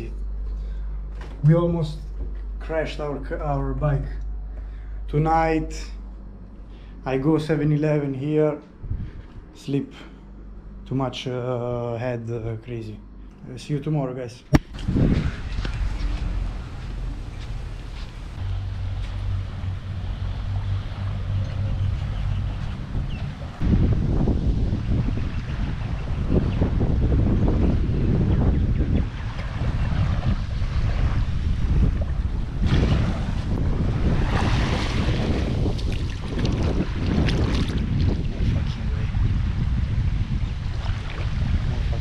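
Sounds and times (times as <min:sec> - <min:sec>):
wind buffeting microphone: 0:08.6 - 0:09.6, 0:14.5 - 0:42.0.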